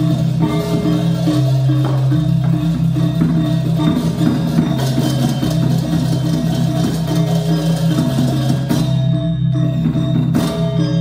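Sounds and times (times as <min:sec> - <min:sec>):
gamelan ensemble playing: 0:00.0 - 0:11.0
metallophones and gongs: 0:00.0 - 0:11.0.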